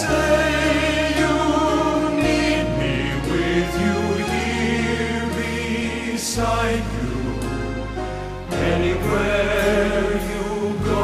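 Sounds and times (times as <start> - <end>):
choir singing held chords: 0.0 - 11.0
instrumental accompaniment: 0.0 - 11.0.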